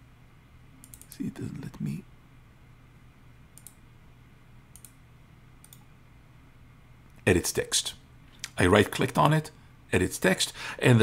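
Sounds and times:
low room hiss: 0.0 - 11.0
faint computer mouse clicks: 0.8 - 1.2, 3.6 - 3.8, 4.7 - 5.0, 5.6 - 5.9.

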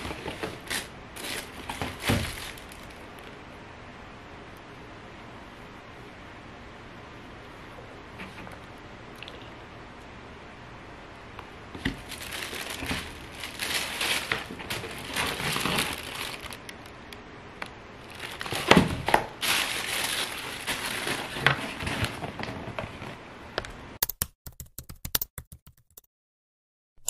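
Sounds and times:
tissue paper crinkling: 0.0 - 3.3, 11.8 - 16.9, 18.0 - 22.8.

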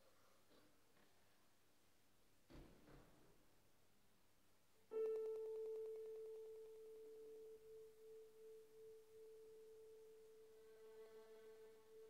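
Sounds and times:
violin sustained note: 6.8 - 12.0.

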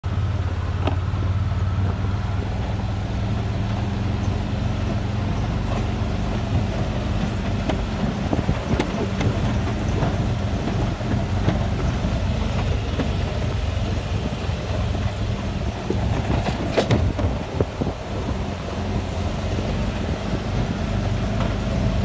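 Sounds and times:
utility vehicle engine running: 0.0 - 22.0
knocks and rattles from rough ground: 0.7 - 22.0.

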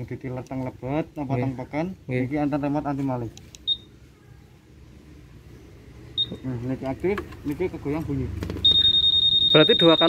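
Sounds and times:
scooter alarm beeps: 3.7 - 3.9, 6.2 - 6.4, 8.6 - 10.0.

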